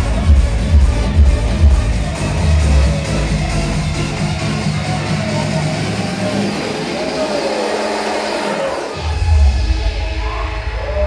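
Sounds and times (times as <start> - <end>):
club dance music: 0.0 - 11.0
crowd voices and shouts: 0.0 - 11.0.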